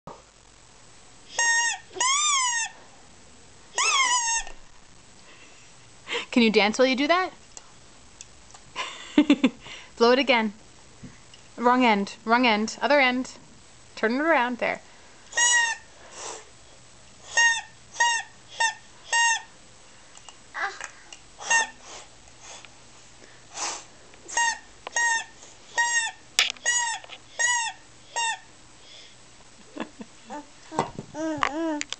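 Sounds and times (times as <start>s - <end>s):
plastic toy horn toots: 17.3s - 19.4s.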